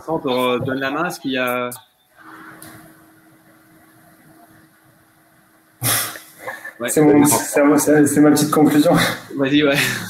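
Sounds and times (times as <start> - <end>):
steady low hum: 0.0 - 10.0
loud burst of noise: 5.8 - 6.5.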